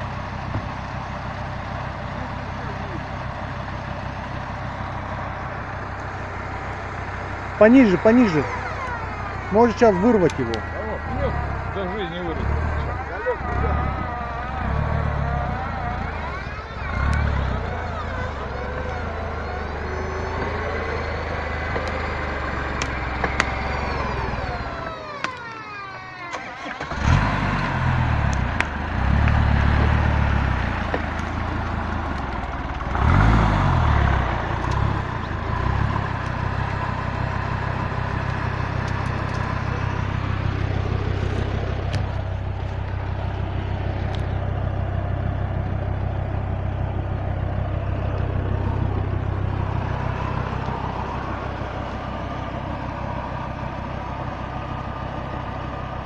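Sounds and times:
off-road vehicle engine revving: 0:00.0 - 0:56.0.

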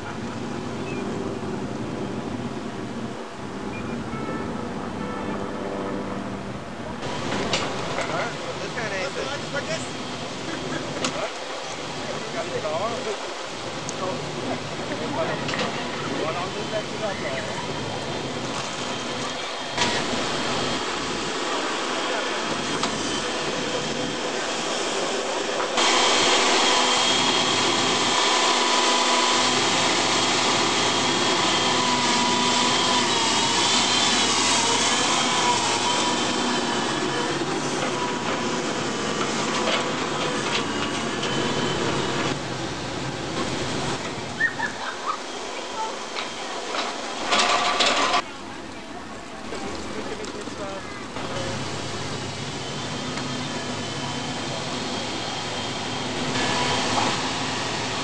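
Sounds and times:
excavator whining: 0:00.0 - 0:58.0.

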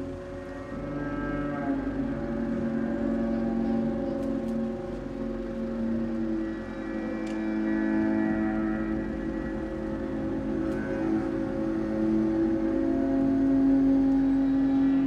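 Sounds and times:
low drone tones over loudspeakers: 0:00.0 - 0:15.0.

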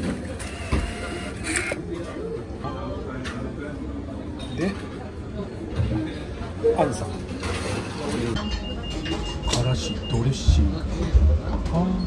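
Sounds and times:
banknote acceptor whirring: 0:00.3 - 0:01.8.

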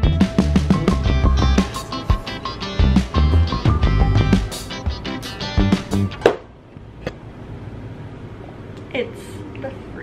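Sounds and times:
strummed guitar music: 0:00.0 - 0:06.2.

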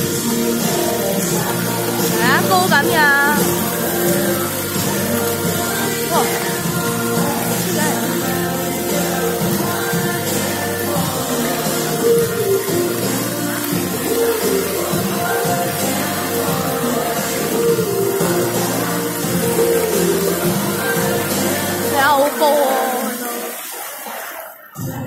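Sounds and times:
fountain water jets hissing: 0:00.0 - 0:25.0
music over loudspeakers: 0:00.0 - 0:25.0.

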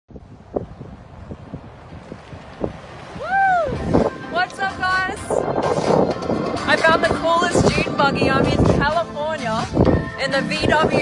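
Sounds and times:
wind buffeting microphone: 0:00.1 - 0:11.0.

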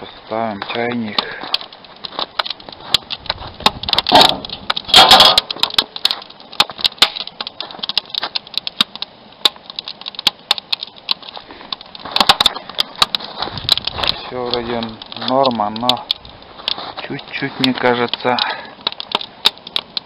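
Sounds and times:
wood fire crackling: 0:00.0 - 0:20.0
metal clatter: 0:03.6 - 0:06.2.

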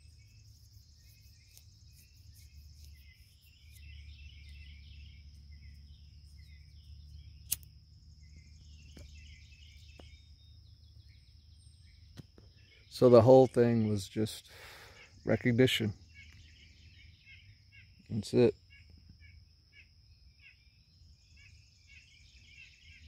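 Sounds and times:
low background rumble: 0:00.0 - 0:12.8
bird chirps and twitters: 0:00.0 - 0:23.0
high insect trill: 0:00.0 - 0:23.0
sharp click: 0:07.5 - 0:07.7.

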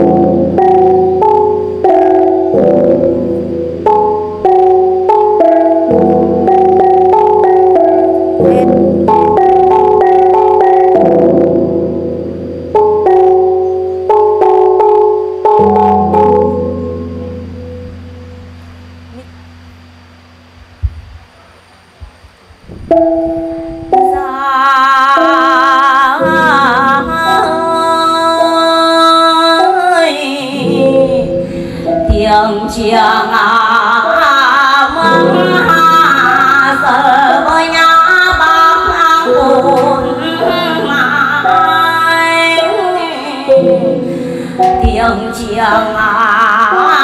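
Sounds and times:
bronze gongs ringing: 0:00.0 - 0:22.0, 0:22.8 - 0:47.0.

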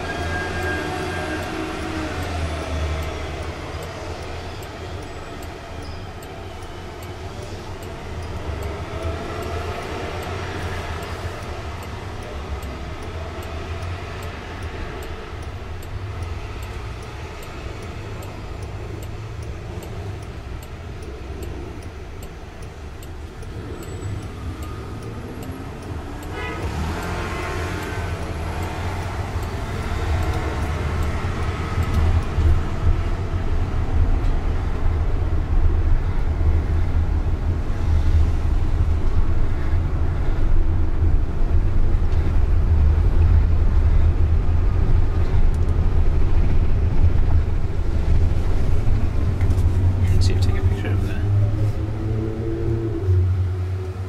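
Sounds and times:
road noise: 0:00.0 - 0:54.0
traffic rumble from inside car: 0:00.0 - 0:54.0.

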